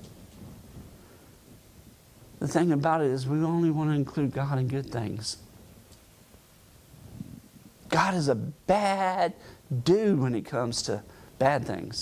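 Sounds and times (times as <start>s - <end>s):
man's voice: 2.4s - 5.4s, 7.9s - 12.0s.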